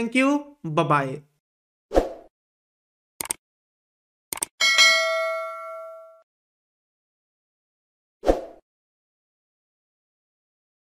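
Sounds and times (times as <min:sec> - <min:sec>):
notification bell ding: 0:04.6 - 0:06.2.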